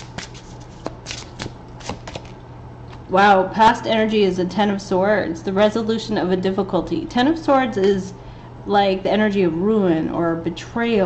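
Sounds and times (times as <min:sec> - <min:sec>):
cards being shuffled: 0:00.0 - 0:03.0.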